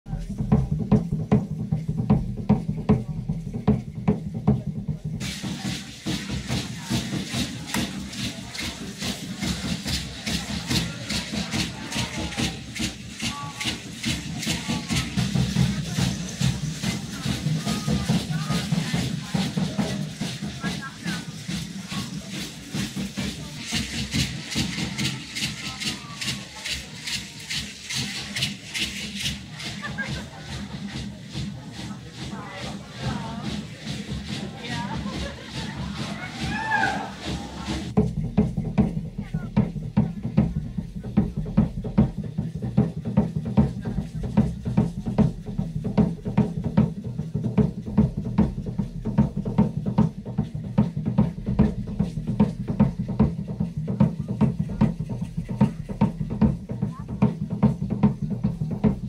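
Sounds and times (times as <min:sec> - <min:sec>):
music with fast steady beat: 0:00.1 - 0:59.0.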